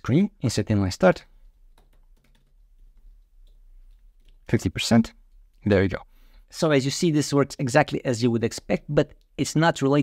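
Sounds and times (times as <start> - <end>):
typing on computer keyboard: 1.7 - 2.6.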